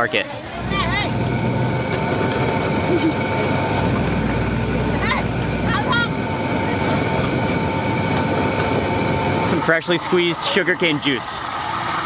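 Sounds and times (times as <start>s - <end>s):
juice press rollers rumbling: 0.0s - 12.0s.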